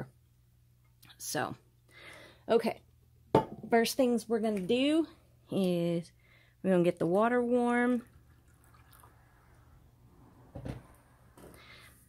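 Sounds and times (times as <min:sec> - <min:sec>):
water sloshing and dripping: 0:08.0 - 0:09.8.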